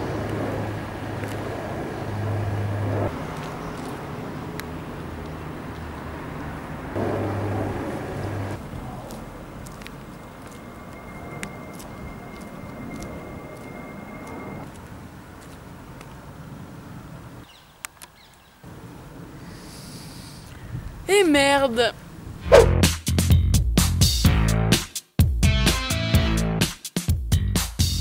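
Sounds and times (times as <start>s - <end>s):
vehicle passing: 0.0s - 17.4s, 22.0s - 22.8s
road traffic: 0.0s - 22.9s
thin steady tone: 10.2s - 14.7s.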